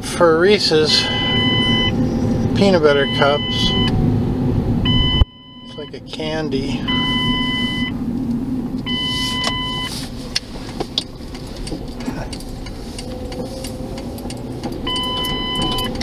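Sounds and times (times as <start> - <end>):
engine and road noise rumble: 0.0 - 16.0
electronic beep: 0.9 - 2.0, 2.9 - 3.9, 4.9 - 6.0, 6.9 - 7.9, 8.9 - 9.9, 14.9 - 15.9.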